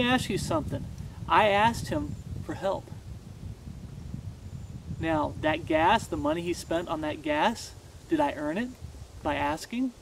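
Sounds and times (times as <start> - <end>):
faint hiss: 0.0 - 10.0
wind rumble on microphone: 0.0 - 10.0.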